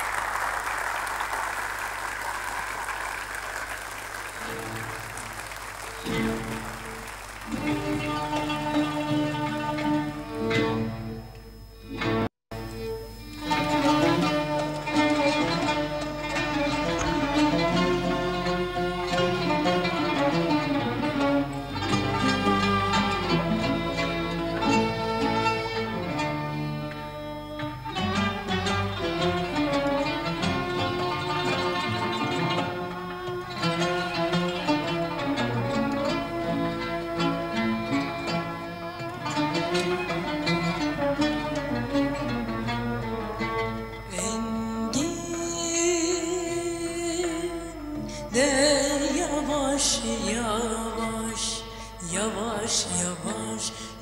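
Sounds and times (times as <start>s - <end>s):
string ensemble with plucked notes: 0.0s - 53.9s.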